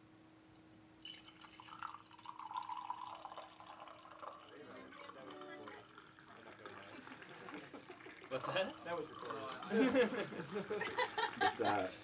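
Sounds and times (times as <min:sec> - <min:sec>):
distant talk of people: 0:03.6 - 0:10.9.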